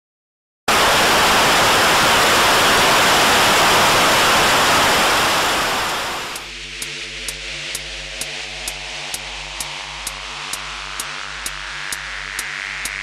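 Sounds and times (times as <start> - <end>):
static noise hiss: 0.7 - 13.0.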